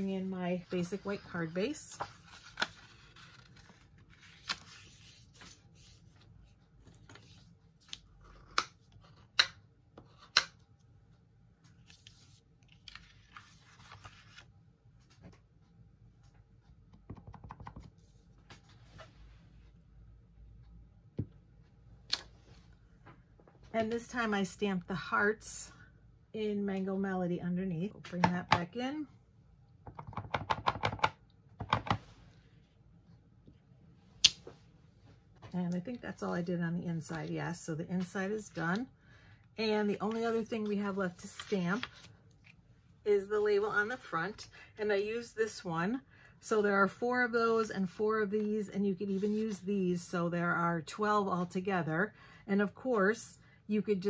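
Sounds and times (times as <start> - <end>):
card rustling: 0.6 - 9.5, 11.7 - 14.5, 40.0 - 42.6.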